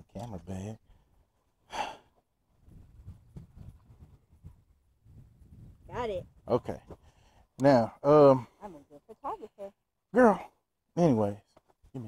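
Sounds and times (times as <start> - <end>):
person sighing: 1.7 - 2.1.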